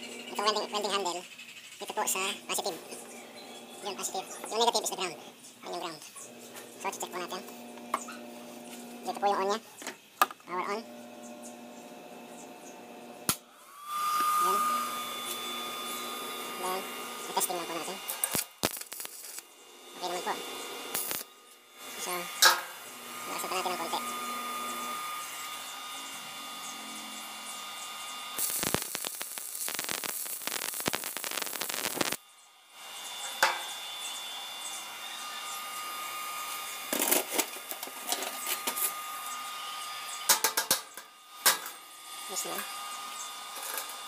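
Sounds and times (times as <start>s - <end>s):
welding arc crackling and hissing: 3.8s - 9.6s, 10.5s - 44.0s.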